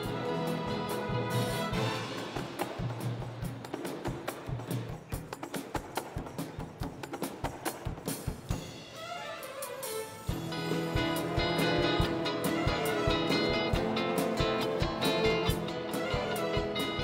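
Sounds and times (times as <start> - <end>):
orchestra playing: 0.0 - 5.4, 8.0 - 17.0
sharp percussion strikes: 0.0 - 17.0.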